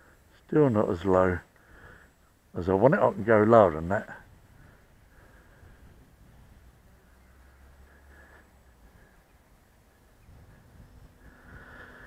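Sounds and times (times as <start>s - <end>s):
wind rumble on microphone: 4.2s - 7.0s, 8.7s - 12.0s.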